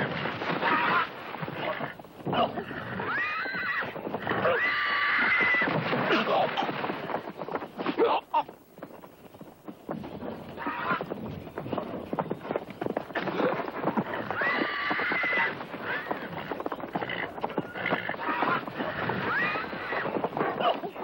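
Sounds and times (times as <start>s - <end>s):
hooves stamping on dirt: 0.0s - 21.0s
horse whinnying: 0.5s - 6.7s, 10.6s - 11.1s, 13.2s - 20.8s.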